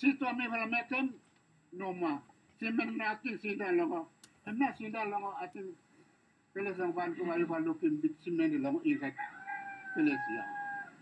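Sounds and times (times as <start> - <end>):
rooster crowing: 8.9 - 11.0.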